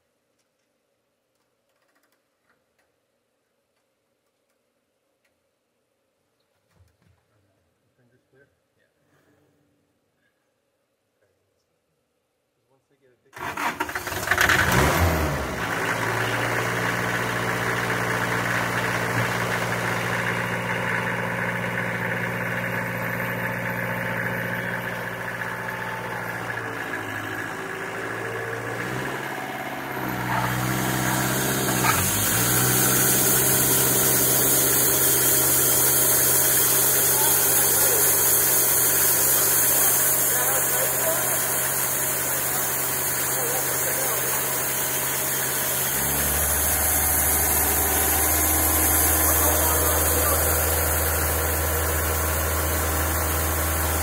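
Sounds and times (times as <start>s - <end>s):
engine starting and idling: 13.4s - 54.0s
hiss: 30.7s - 54.0s.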